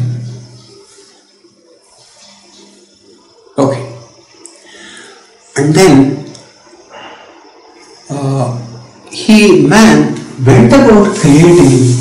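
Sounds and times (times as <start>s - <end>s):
faint steady hiss: 0.0s - 12.0s
low even hum: 0.0s - 12.0s.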